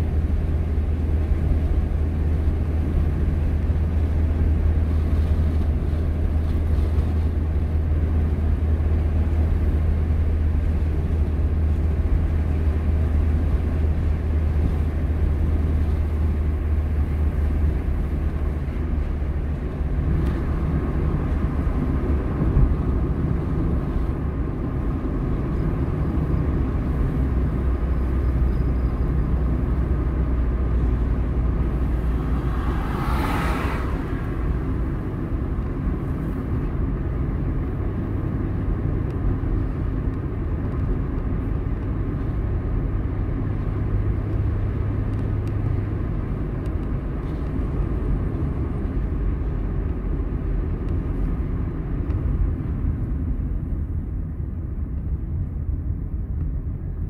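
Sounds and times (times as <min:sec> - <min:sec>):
car engine and tyre rumble: 0:00.0 - 0:57.0
brief whoosh: 0:32.1 - 0:34.6.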